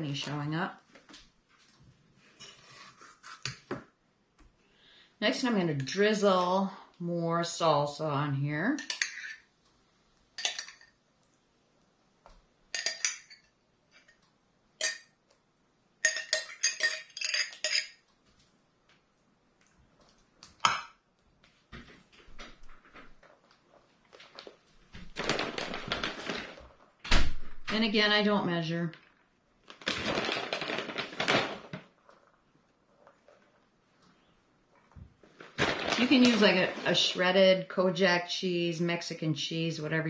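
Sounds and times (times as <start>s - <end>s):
metal spoon clinking against glass: 16.0s - 18.0s
plastic bag crinkling: 24.2s - 26.8s, 29.6s - 32.3s, 35.2s - 37.0s.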